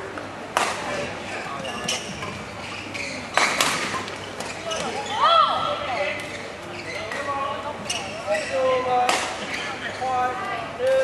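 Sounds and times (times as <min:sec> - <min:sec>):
racket hitting shuttlecock: 0:00.5 - 0:01.0
shoes squealing on court floor: 0:00.9 - 0:08.8, 0:09.4 - 0:10.1.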